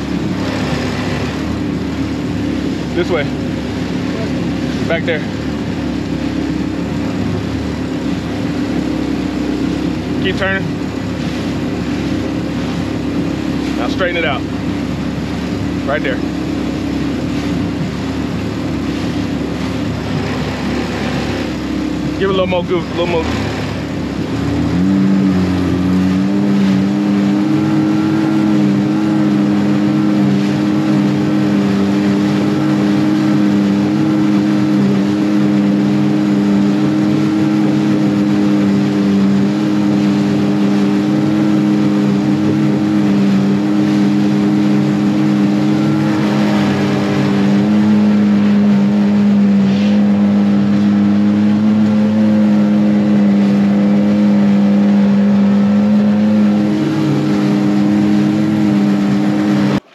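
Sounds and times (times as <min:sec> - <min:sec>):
outboard motor running: 0:00.0 - 0:59.9
water rushing along hull: 0:00.0 - 0:59.9.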